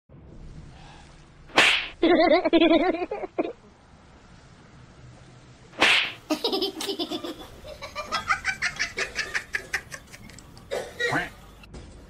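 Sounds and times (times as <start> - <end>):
faint background noise: 0.1 - 12.0
loud swish: 1.5 - 2.0, 5.7 - 6.2.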